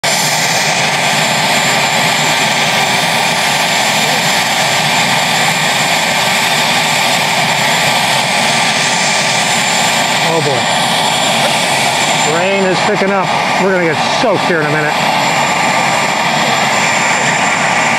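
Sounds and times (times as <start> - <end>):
helicopter turbine whine and rotor: 0.0 - 17.9.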